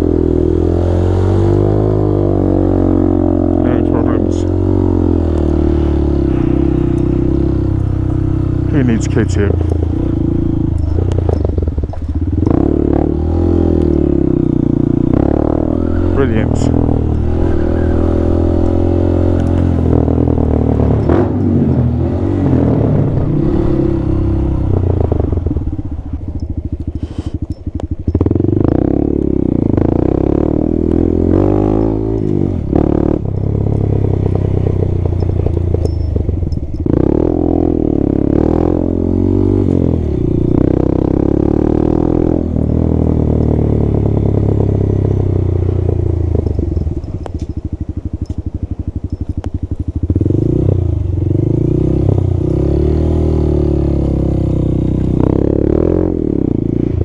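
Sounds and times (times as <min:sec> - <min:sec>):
motorcycle engine revving: 0:00.0 - 0:57.0.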